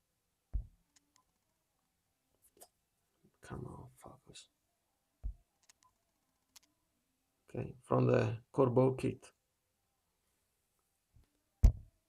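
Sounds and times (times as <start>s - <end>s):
soft low thump: 0.6s - 0.8s, 11.6s - 11.9s.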